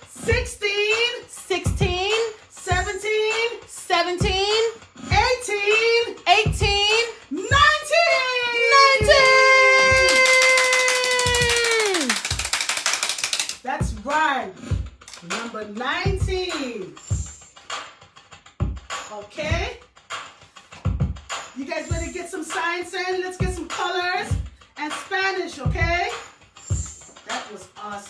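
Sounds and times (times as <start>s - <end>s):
short sung phrases: 0.2s - 11.2s.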